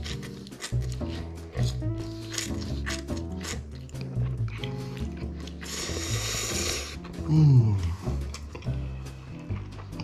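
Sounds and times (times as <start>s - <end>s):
person slurping noodles: 0.0s - 8.8s
background music with bass: 0.0s - 10.0s.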